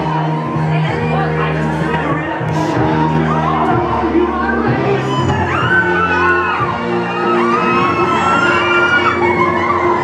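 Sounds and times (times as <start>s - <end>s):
crowd shouting and whooping: 0.0s - 10.0s
music with long held notes: 0.0s - 10.0s.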